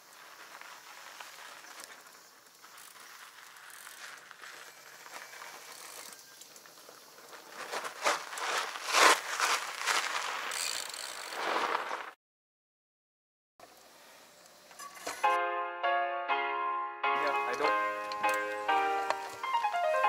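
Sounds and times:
bike tyres rolling over gravel: 0.0 - 12.2, 17.2 - 20.0
faint outdoor background: 0.0 - 12.2, 13.6 - 20.0.

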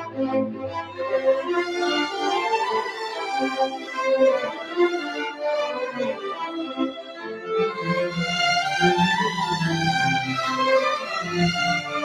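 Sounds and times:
string orchestra playing: 0.0 - 12.0.

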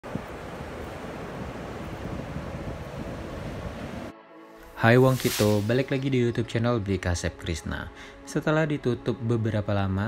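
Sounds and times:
ocean surf on beach: 0.0 - 4.1
wind rumbling on microphone: 0.0 - 4.1.

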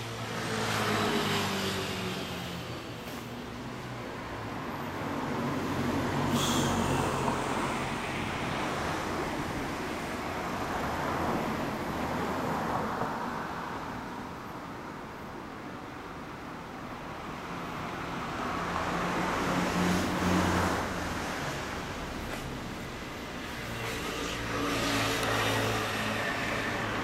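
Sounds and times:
passing road traffic: 0.0 - 27.0
vehicle engine: 5.6 - 10.1, 18.9 - 27.0.

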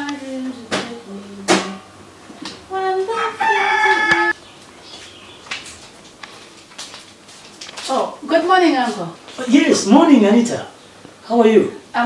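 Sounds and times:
rooster crowing: 3.1 - 4.4.

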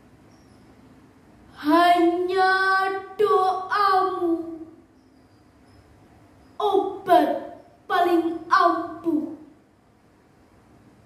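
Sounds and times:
girl reciting in long sung note: 1.5 - 5.0, 6.5 - 9.6.

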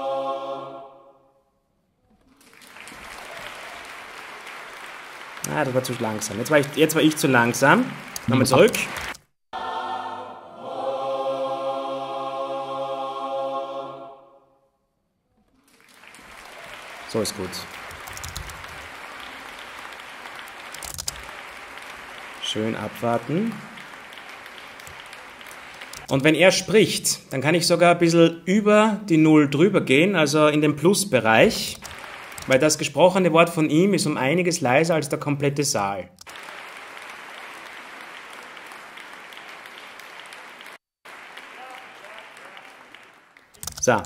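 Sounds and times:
audience applauding: 2.2 - 9.3, 15.6 - 26.8, 31.4 - 33.2, 36.2 - 44.0.

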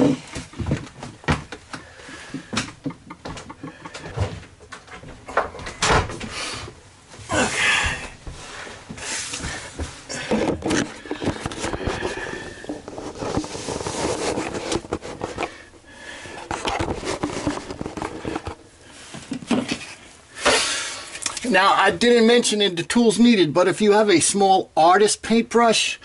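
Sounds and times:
handling noise scraping and rustling: 8.4 - 21.7.

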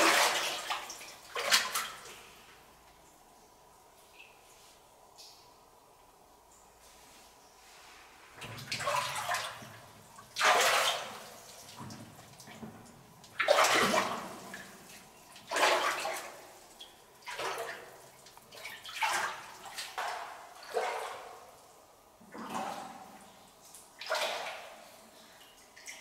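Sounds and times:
feet splashing in shallow water: 10.4 - 11.6, 15.5 - 16.4.

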